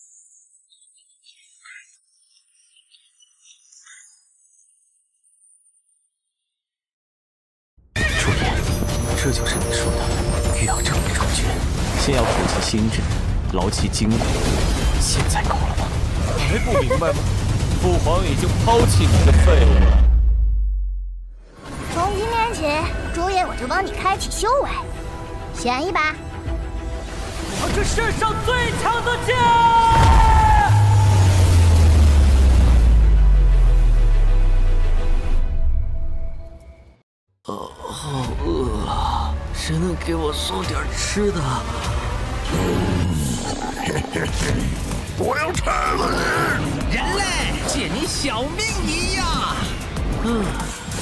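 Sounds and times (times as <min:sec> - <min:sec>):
animated action sound effects: 0:08.0 - 0:20.3
action music: 0:08.0 - 0:36.7, 0:38.3 - 0:51.0
deep boom and low rumble: 0:12.9 - 0:21.4
man shouting: 0:28.6 - 0:31.1.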